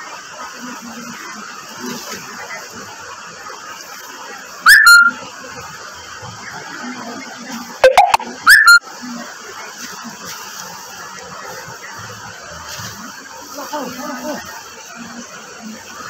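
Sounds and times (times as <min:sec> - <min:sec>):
rising whistle-like calls: 0:04.6 - 0:05.2, 0:07.8 - 0:08.8.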